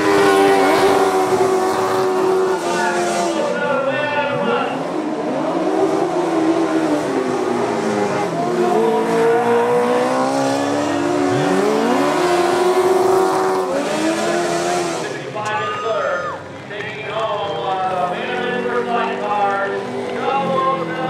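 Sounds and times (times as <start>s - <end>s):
sidecar engines racing: 0.0s - 21.0s.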